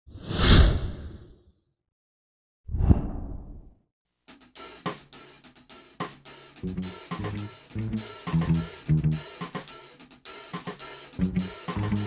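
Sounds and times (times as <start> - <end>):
whoosh: 2.7 - 3.7.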